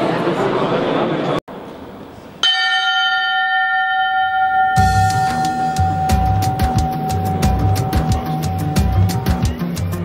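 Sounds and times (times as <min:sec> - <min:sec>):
bell ringing: 0:02.4 - 0:09.6.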